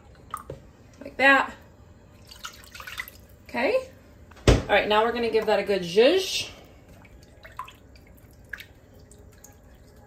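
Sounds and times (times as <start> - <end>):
small drips: 6.6 - 10.0
wet stirring of liquid: 6.6 - 10.0.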